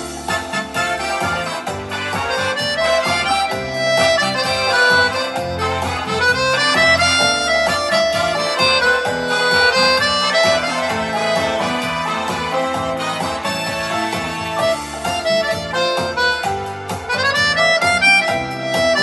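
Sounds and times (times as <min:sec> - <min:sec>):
accordion playing lively tune: 0:00.0 - 0:19.0.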